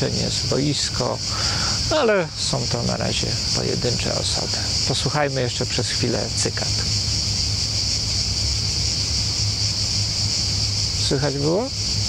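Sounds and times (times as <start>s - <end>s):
cicadas buzzing: 0.0s - 12.0s
low steady hum: 0.0s - 12.0s.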